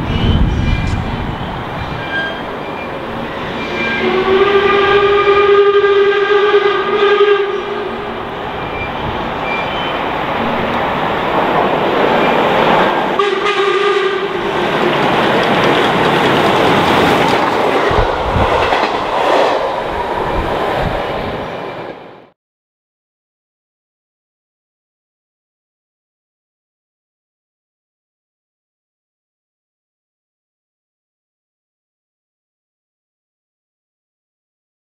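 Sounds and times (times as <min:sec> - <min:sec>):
steam train passing: 0:00.0 - 0:22.3
steam locomotive whistle: 0:02.0 - 0:10.0, 0:13.1 - 0:15.0
train wheel beats: 0:11.6 - 0:20.8.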